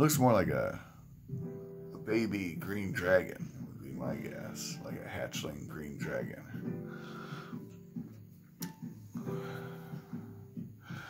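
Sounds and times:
guitar music: 0:00.0 - 0:11.0.

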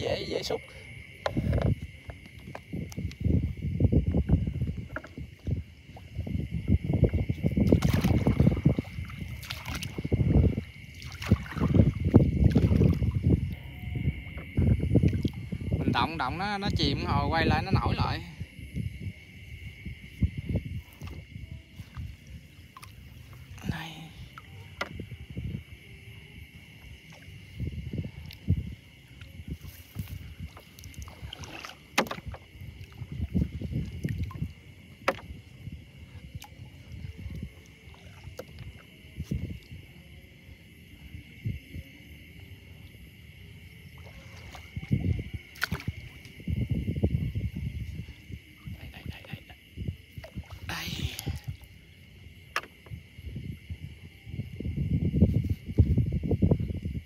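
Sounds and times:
water sloshing and splashing: 0:00.0 - 0:57.0.

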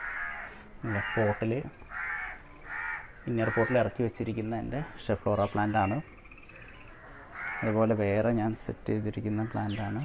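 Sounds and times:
crows cawing: 0:00.0 - 0:04.0, 0:06.5 - 0:07.8, 0:09.4 - 0:10.0.

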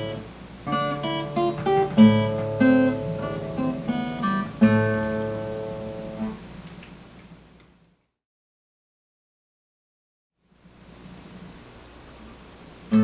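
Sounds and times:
acoustic guitar chord ringing: 0:00.0 - 0:06.5
acoustic guitar plucking: 0:00.0 - 0:06.6.

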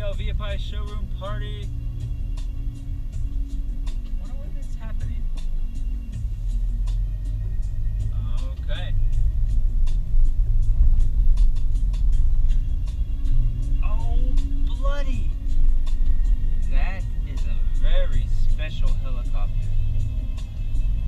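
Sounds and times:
car engine and tyres rumbling: 0:00.0 - 0:21.0.

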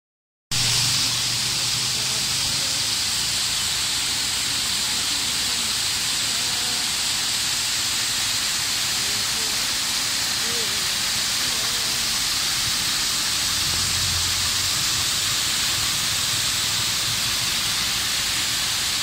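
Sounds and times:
water pouring over weir: 0:00.5 - 0:19.0
waterfall rushing: 0:00.5 - 0:19.0.

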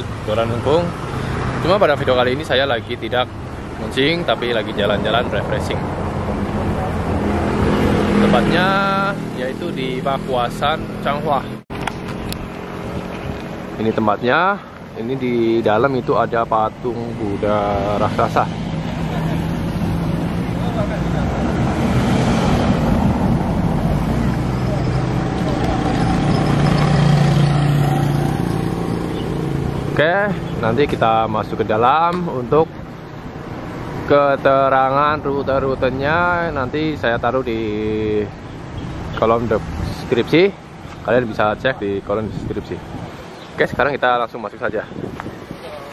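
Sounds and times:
motor scooters passing on cobbles: 0:17.8 - 0:31.0.

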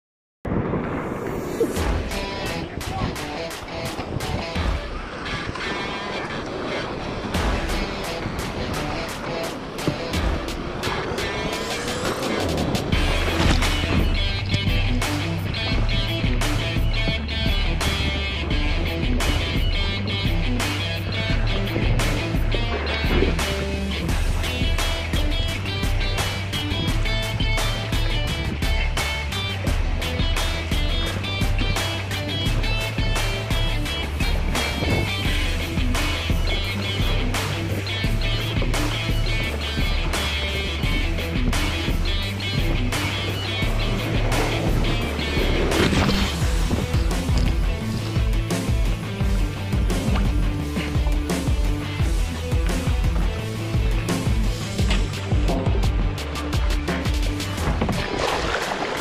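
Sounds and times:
background music with bass line: 0:00.5 - 0:59.0.

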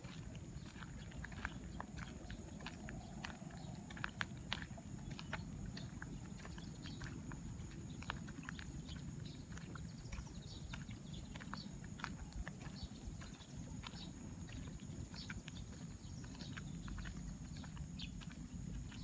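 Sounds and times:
footsteps crunching on gravel: 0:00.0 - 0:19.0.

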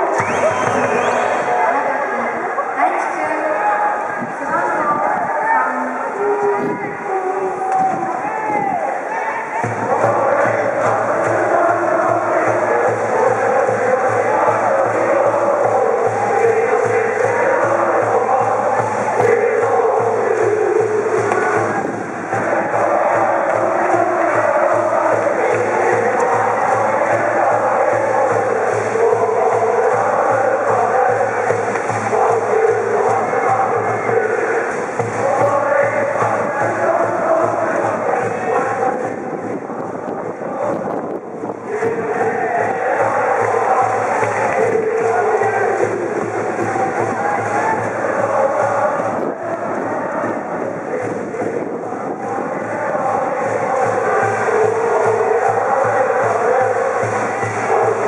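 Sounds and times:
crowd singing and shouting: 0:00.0 - 0:58.0.

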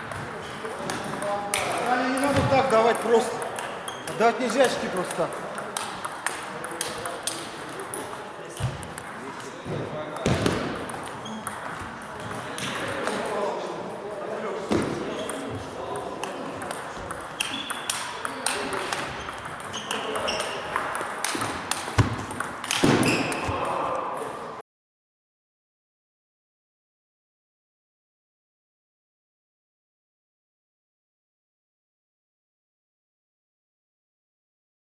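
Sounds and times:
table tennis balls clicking: 0:00.0 - 0:13.5, 0:15.1 - 0:24.3
murmur of voices: 0:00.0 - 0:22.0, 0:23.3 - 0:24.6.

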